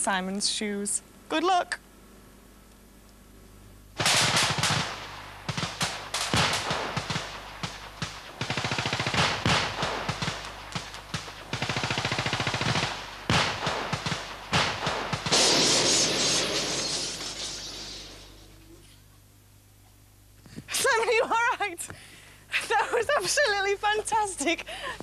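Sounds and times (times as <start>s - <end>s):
rapid gunfire bursts: 4.0s - 16.0s
sharp cracks of pyrotechnics: 4.0s - 18.5s
large blast: 12.7s - 17.3s.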